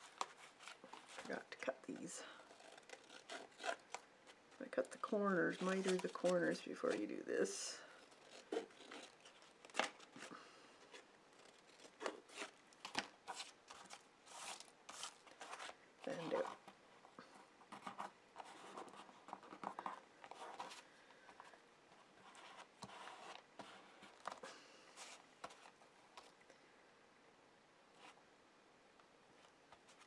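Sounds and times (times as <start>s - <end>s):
paper rustling: 0.0s - 16.8s
scissors snipping paper: 2.4s - 4.0s.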